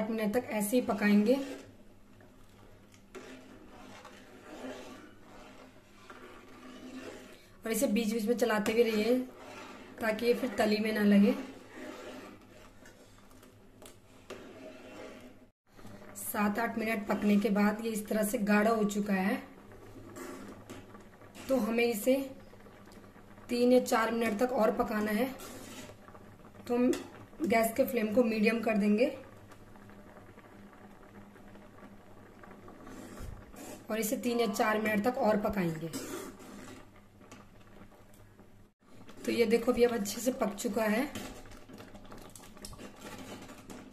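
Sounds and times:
ladle scraping steel pot: 0.3s - 15.5s, 19.9s - 22.0s, 24.3s - 26.1s, 32.8s - 37.4s, 39.0s - 43.9s.

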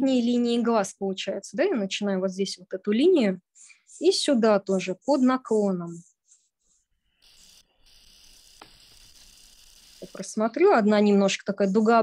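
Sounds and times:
pencil scratching on paper: 3.0s - 10.8s.

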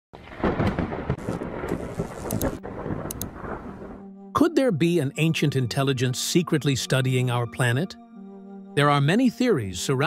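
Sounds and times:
low rumbling crackling noise: 0.2s - 4.3s.

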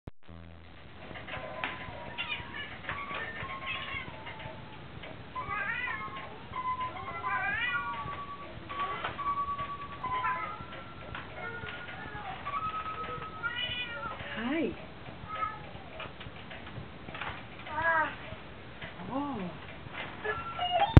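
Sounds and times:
electronic cat meow sounds: 5.4s - 6.3s
toy keyboard electronic notes: 5.4s - 14.0s.

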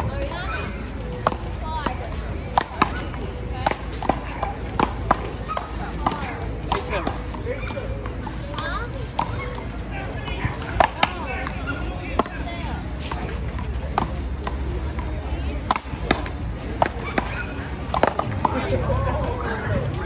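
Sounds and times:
rubber ball hitting paddles and wall: 10.4s - 18.7s.

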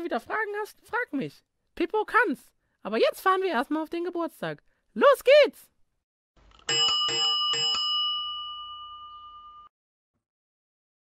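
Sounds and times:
bicycle bell ringing: 6.6s - 9.7s.

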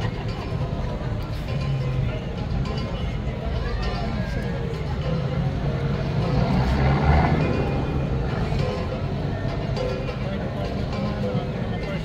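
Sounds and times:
music playing: 0.0s - 12.0s.

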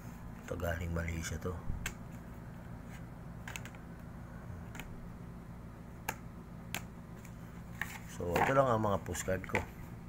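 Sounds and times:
low steady hum: 0.0s - 10.0s
postcards clicking and tapping: 3.4s - 3.8s, 4.6s - 5.0s.

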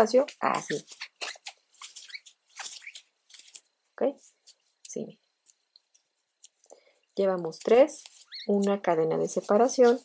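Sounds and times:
crochet hook scratching yarn: 0.0s - 6.6s, 7.4s - 10.0s.

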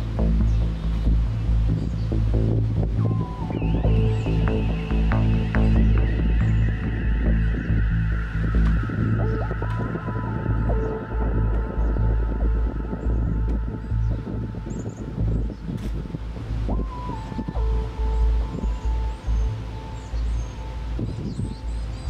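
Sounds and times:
music with long-held tones: 0.0s - 22.0s
wind on microphone: 0.0s - 22.0s.

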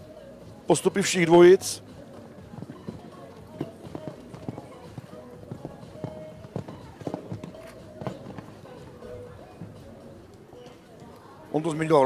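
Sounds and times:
horse hooves cantering on sand: 1.9s - 9.9s.

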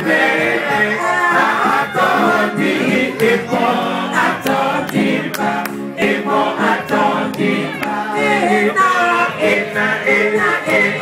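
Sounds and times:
group singing in harmony: 0.0s - 11.0s.

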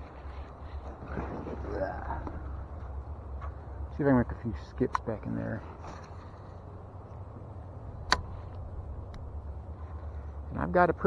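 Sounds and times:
low rumble: 5.6s - 10.7s.

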